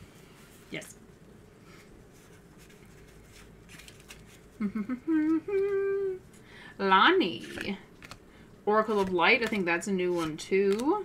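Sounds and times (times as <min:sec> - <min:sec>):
person humming: 0:04.5 - 0:06.3.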